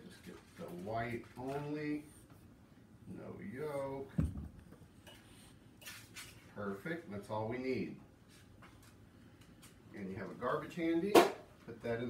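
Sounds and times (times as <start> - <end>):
dull thump: 4.1 - 4.7.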